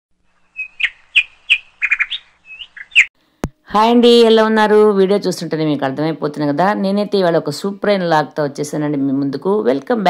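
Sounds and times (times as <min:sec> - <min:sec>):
bird chirping: 0:00.2 - 0:03.1.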